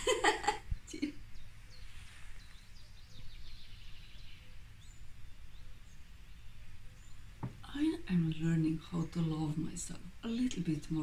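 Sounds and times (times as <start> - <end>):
low steady hum: 0.0 - 11.0
faint bird chirps: 0.6 - 7.4.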